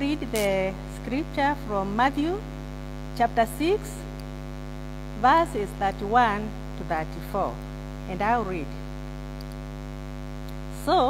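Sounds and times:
woman speaking: 0.0 - 2.4, 3.2 - 4.1, 5.2 - 8.8, 10.7 - 11.0
electrical mains hum: 0.0 - 11.0.

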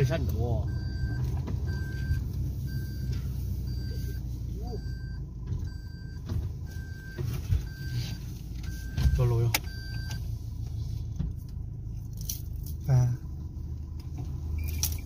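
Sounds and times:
engine and road rumble: 0.0 - 15.0.

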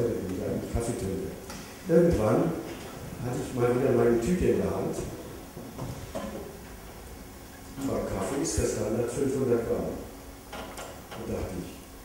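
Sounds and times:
faint small noises: 0.0 - 12.0
low steady hum: 0.0 - 12.0.

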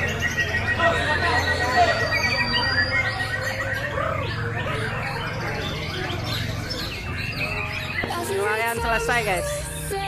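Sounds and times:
songbirds singing: 0.0 - 10.0.

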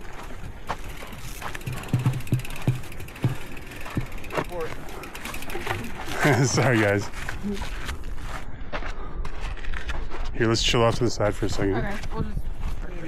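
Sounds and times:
bike knocking on rocks: 0.6 - 7.0
bike thumps: 0.7 - 5.9
freehub ratchet clicking: 0.7 - 6.2.

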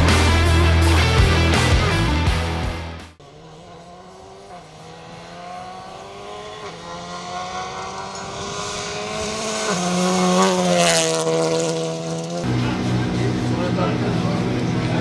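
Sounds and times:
gravel and tyre noise: 3.2 - 15.0
rally car engine driven hard: 3.2 - 15.0.

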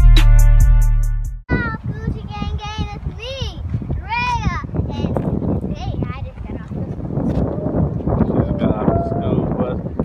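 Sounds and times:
music: 0.0 - 1.4.

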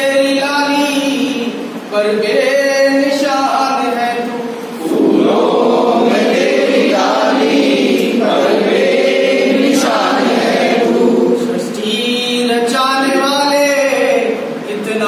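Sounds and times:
group singing a prayer song: 4.8 - 11.9.

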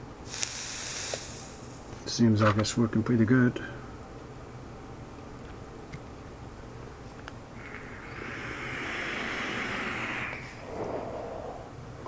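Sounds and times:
hiss of vaporizer draw: 0.2 - 2.0, 7.6 - 11.6
person exhaling: 7.6 - 11.8.

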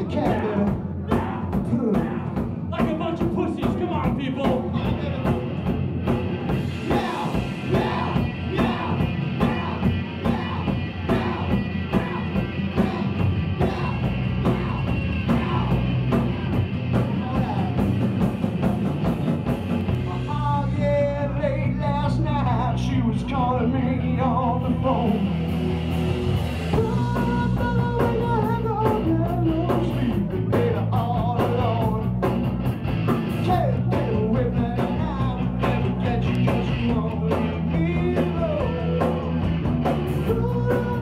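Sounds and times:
man singing: 0.0 - 5.4, 6.8 - 18.0, 19.9 - 25.4, 26.7 - 32.3, 33.3 - 39.5, 40.1 - 41.0
rock band playing live: 0.0 - 41.0
drum and cymbal hits: 0.2 - 21.0, 25.1 - 41.0.

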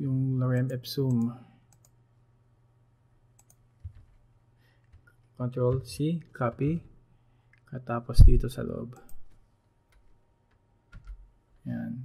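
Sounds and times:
computer keys clicking: 0.6 - 2.0, 3.4 - 4.2, 9.0 - 11.3.

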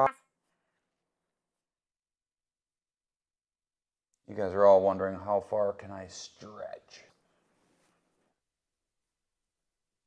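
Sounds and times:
man speaking: 4.2 - 7.2.

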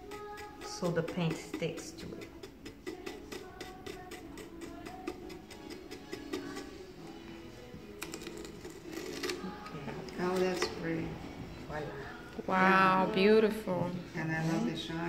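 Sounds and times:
stencil brush tapping: 0.0 - 6.8
background music: 0.0 - 15.0.

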